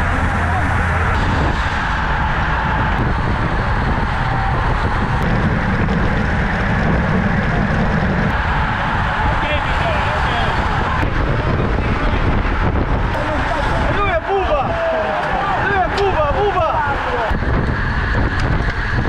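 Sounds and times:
tyre and road noise: 0.0s - 19.0s
wind buffeting microphone: 0.0s - 19.0s.

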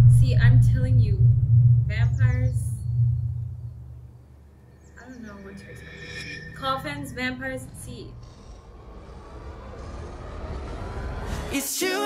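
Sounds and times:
low bass drone: 0.0s - 11.6s.

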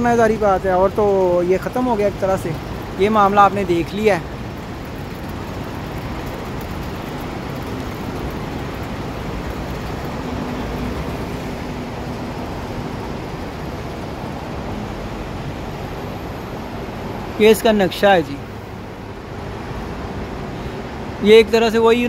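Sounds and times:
road traffic hum: 0.0s - 22.0s.

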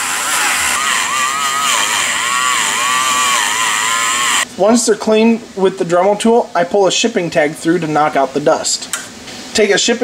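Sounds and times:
rotary tool wire brush whine: 0.0s - 4.4s.

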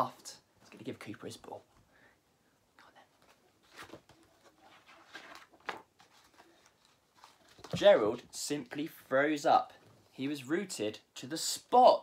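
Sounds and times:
paper page turning: 3.3s - 8.2s.

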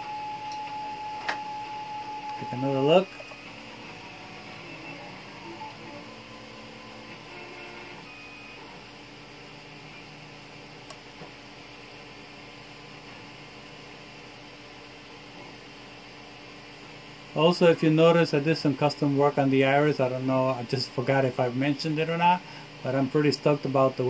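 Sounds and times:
printer low hum: 0.0s - 24.0s
faint shifting motor tones: 0.1s - 11.1s.

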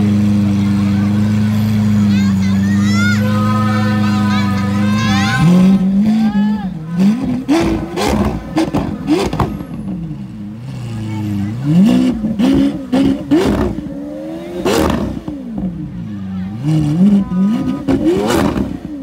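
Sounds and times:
car engine revving: 0.0s - 19.0s
crowd voices: 0.0s - 19.0s
exhaust pops and crackles: 7.0s - 9.9s.

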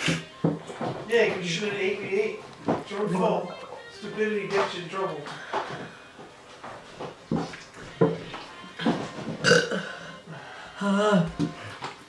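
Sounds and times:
boy burping loudly: 9.4s - 11.4s.

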